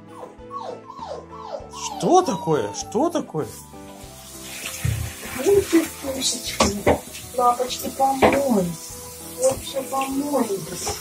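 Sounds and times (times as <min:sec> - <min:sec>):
background music: 0:00.0 - 0:11.0
shower water running into tray: 0:03.4 - 0:11.0.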